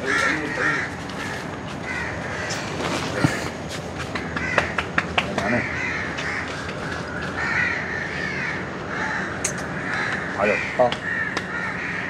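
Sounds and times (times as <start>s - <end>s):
crows cawing: 0.0s - 12.0s.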